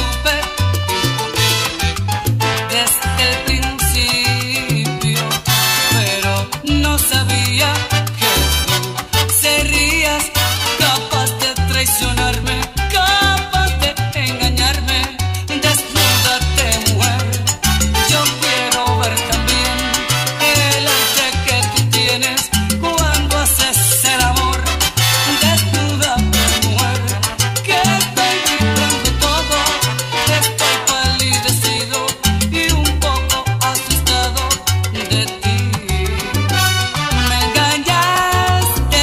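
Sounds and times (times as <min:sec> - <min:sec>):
bass line: 0:00.0 - 0:39.0
salsa music: 0:00.0 - 0:39.0.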